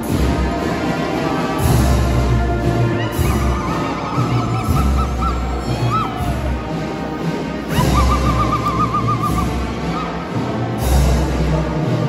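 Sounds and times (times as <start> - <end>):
people ululating: 2.8 - 7.0, 7.6 - 10.5.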